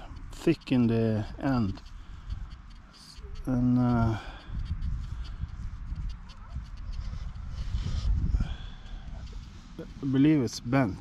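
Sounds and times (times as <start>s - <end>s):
faint scattered clicks: 0.0s - 7.4s
wind buffeting microphone: 0.0s - 10.0s.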